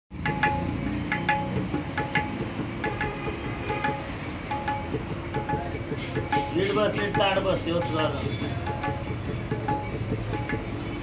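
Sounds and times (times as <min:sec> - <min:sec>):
tabla strokes: 0:00.1 - 0:11.0
low resonant drum: 0:00.2 - 0:10.9.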